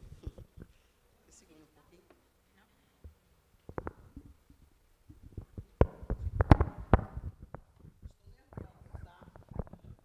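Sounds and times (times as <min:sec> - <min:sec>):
microphone handling thumps: 0:03.0 - 0:10.0
sharp knocks on microphone: 0:05.4 - 0:07.6.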